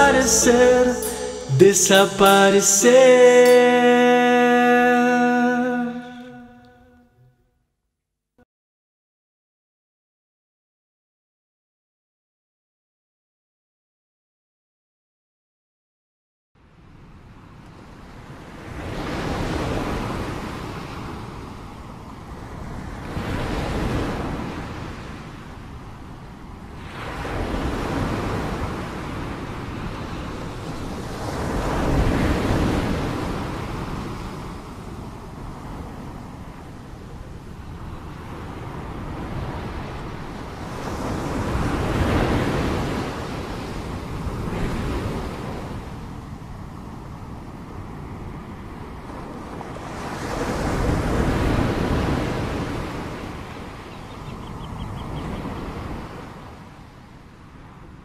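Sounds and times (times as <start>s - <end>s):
ocean surf breaking on beach: 17.4s - 58.0s.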